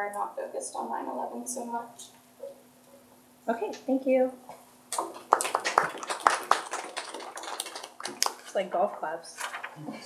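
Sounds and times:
audience clapping: 4.9 - 8.5.

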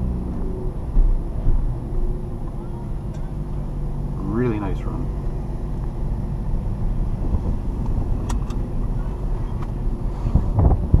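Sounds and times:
car engine and tyres rumble: 0.0 - 11.0.

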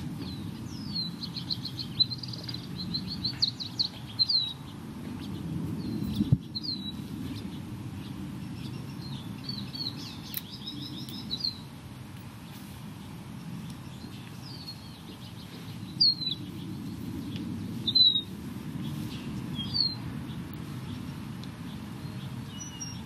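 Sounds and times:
low steady rumble: 0.0 - 23.0
songbird chirping trills: 0.1 - 23.0.

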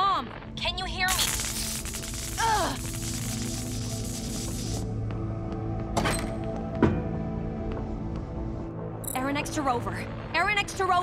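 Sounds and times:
tense background music: 0.0 - 11.0
static hiss and crackle: 1.1 - 4.9.

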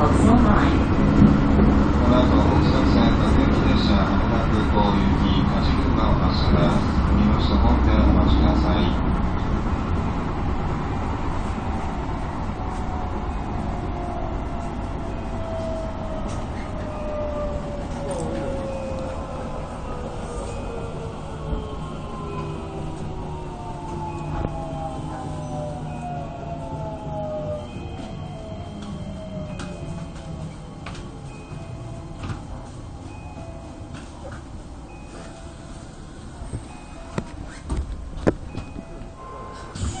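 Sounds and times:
low running drone: 0.0 - 40.0.

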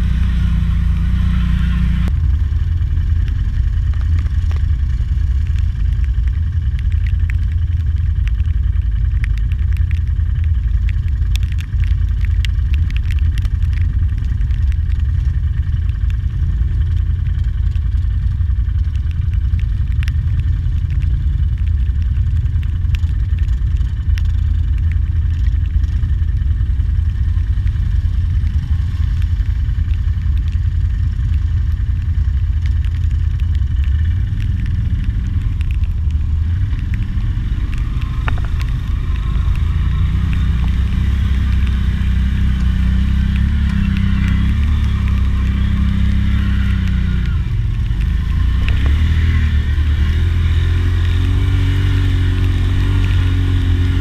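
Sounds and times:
atv engine rumbling: 0.0 - 54.0
sharp ticks: 2.0 - 54.0.

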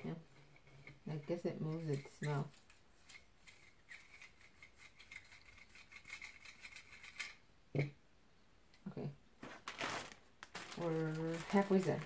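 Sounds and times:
paper bag rustling: 9.4 - 12.0
plastic toy handling: 9.4 - 12.0.

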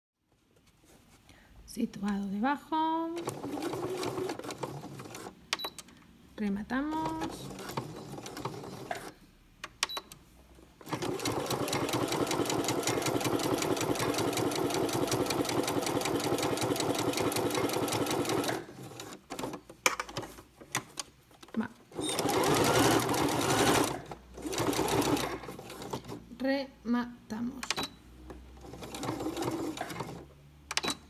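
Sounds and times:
electric sewing machine stitching: 3.2 - 5.3, 10.8 - 19.4, 22.0 - 26.2, 28.6 - 30.2
sewing machine clicks: 10.8 - 20.2.

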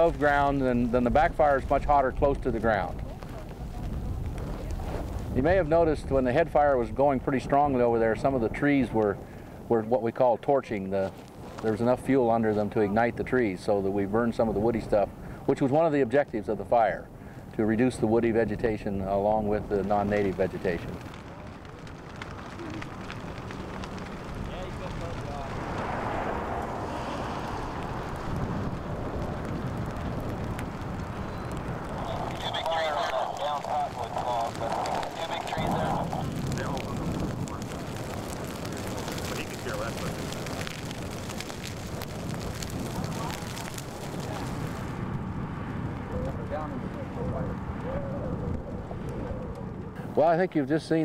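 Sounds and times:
grass fire rushing and crackling: 0.0 - 51.0
low wind rumble: 0.0 - 51.0.

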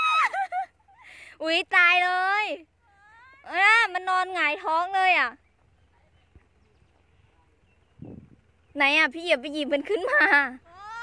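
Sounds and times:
woman crying out: 0.0 - 0.5
woman speaking excitedly: 3.4 - 5.4.

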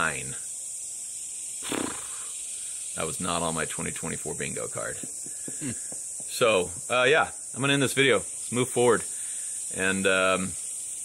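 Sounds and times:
insects droning in trees: 0.0 - 11.0
man's short vocal sound: 1.6 - 2.2.

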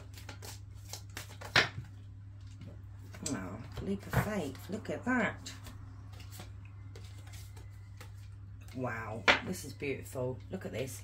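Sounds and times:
cards being shuffled: 0.0 - 2.0, 5.5 - 8.9.

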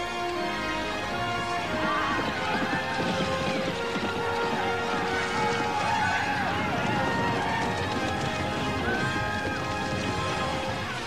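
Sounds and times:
horse hoofbeats galloping: 0.0 - 11.0
music: 0.0 - 11.0.

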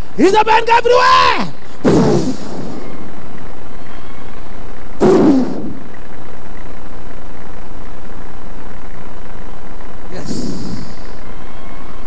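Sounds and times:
person shouting through a microphone: 0.2 - 1.6.

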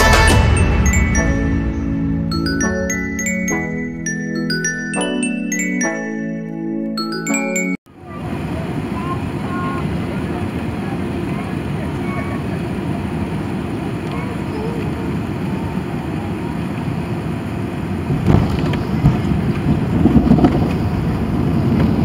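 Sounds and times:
faint passenger voices: 7.9 - 19.7
airplane taxiing rumble: 7.9 - 22.0.

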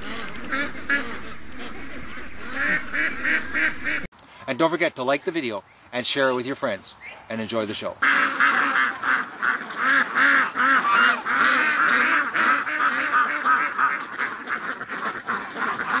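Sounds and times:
ducks and geese honking and quacking: 0.0 - 4.1, 6.2 - 16.0.

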